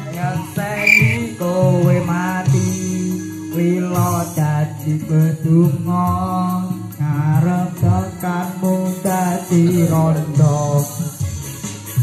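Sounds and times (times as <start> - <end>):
man singing off-key into microphone: 0.0 - 11.2.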